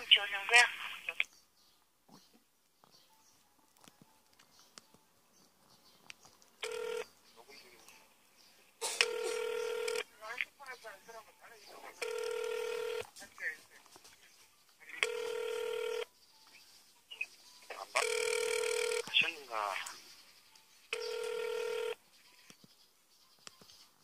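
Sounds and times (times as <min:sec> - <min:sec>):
telephone ringback tone: 0:06.6 - 0:07.1, 0:09.0 - 0:10.1, 0:12.0 - 0:13.1, 0:15.0 - 0:16.1, 0:18.0 - 0:19.2, 0:20.9 - 0:22.0.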